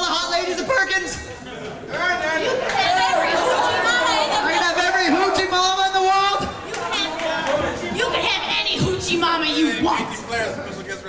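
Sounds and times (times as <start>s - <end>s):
voices talking over one another: 1.9s - 11.0s.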